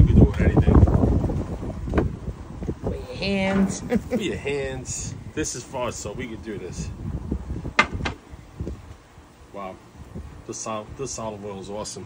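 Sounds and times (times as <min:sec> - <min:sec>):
low background rumble: 0:00.0 - 0:10.5.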